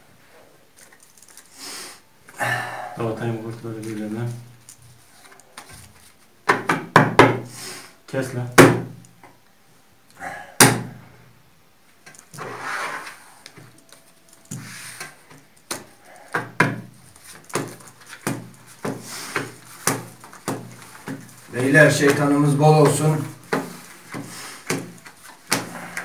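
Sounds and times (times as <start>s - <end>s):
cards rustling: 0.7s - 1.6s, 3.2s - 6.4s, 12.0s - 26.0s
playing cards tapping on table: 15.7s - 21.3s.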